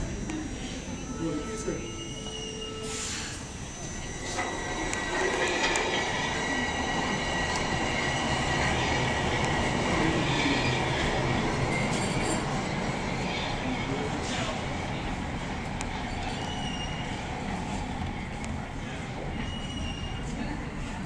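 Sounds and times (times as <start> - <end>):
high-pitched squeal: 0.0 - 14.6
subway train running: 0.0 - 21.0
short hiss: 2.8 - 3.4
wheels rumbling on rails: 3.8 - 21.0.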